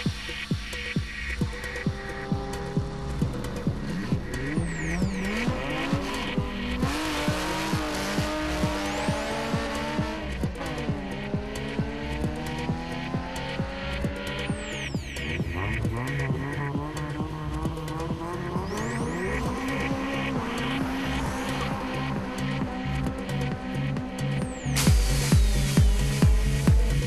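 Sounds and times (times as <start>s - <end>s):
car engine revving: 0.0s - 27.0s
electronic dance music: 0.0s - 27.0s.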